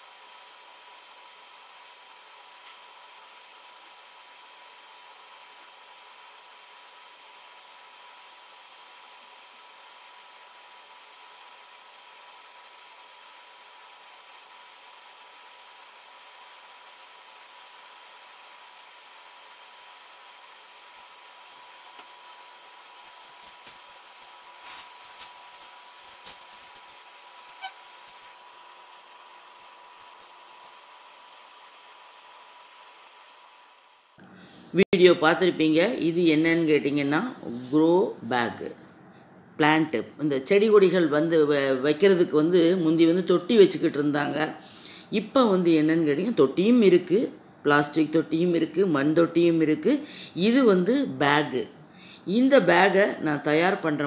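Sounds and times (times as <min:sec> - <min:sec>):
room hiss: 0:00.0 - 0:39.6
faint steady whine: 0:00.0 - 0:54.0
plastic sacks crackling: 0:23.2 - 0:27.0.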